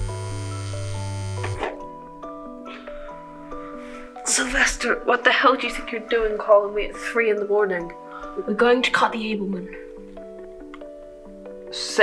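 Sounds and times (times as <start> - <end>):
phone buzzing on vibrate: 0.0 - 1.8
soft background music: 0.0 - 12.0.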